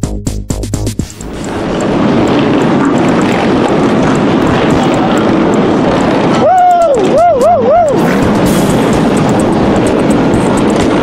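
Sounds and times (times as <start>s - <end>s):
motorcycles riding past: 1.3s - 11.0s.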